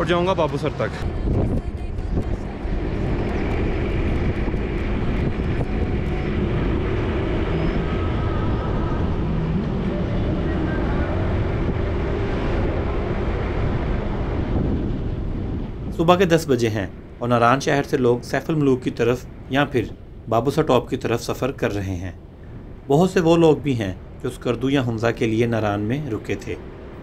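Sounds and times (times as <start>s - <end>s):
low engine hum: 0.0s - 20.3s
tyre and wind noise: 1.0s - 16.1s.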